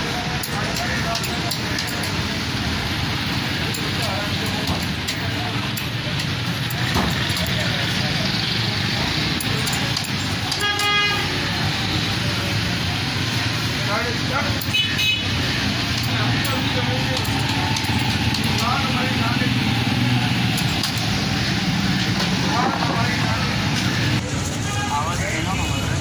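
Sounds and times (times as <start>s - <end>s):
street traffic noise: 0.0s - 26.0s
vehicle horn toot: 10.5s - 11.5s, 14.7s - 15.4s.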